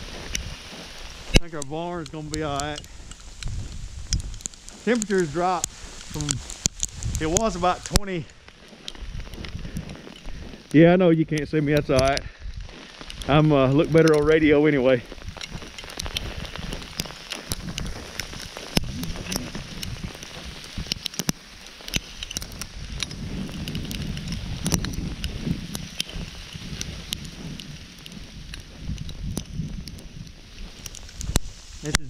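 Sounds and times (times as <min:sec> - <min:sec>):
crackling ticks: 0:00.0 - 0:32.0
footsteps crunching on sleet: 0:00.0 - 0:32.0.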